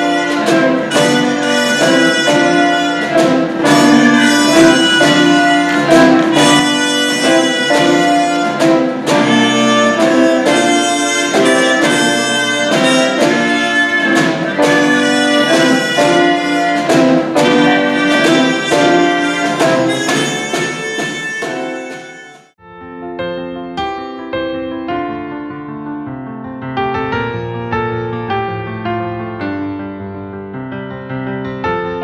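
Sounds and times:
small live ensemble playing: 0.0s - 32.0s.

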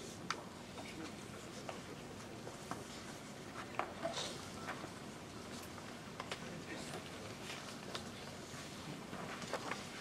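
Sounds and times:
faint clicks and rustles: 0.0s - 10.0s.

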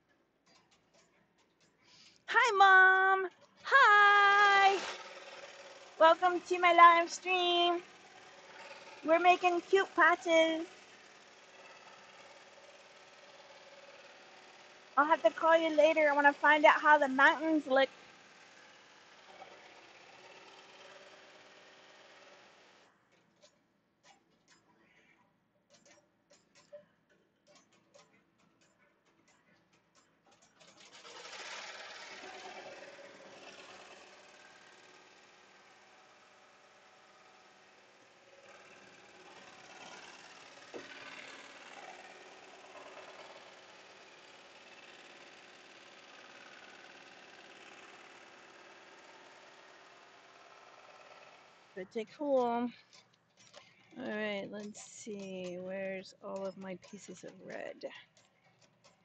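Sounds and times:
embroidery machine stitching: 3.2s - 25.1s, 27.4s - 59.0s.

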